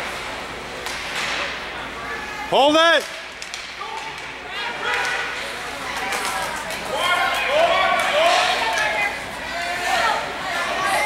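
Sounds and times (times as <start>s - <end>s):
murmur of distant voices: 1.2s - 11.0s.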